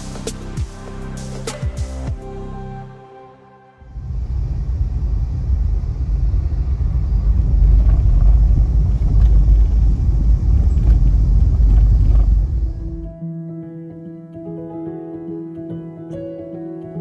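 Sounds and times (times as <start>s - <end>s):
road and tyre rumble: 3.9s - 13.1s.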